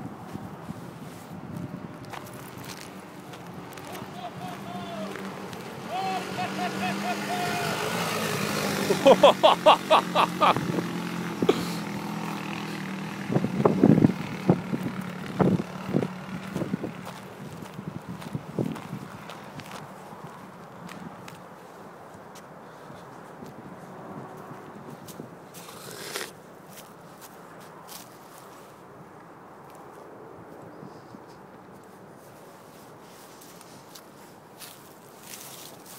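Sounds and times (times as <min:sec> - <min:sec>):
buggy engine running: 0:03.7 - 0:17.8.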